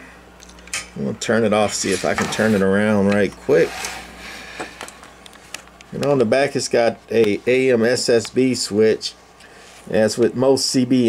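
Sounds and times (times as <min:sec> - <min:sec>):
low steady hum: 0:00.0 - 0:11.0.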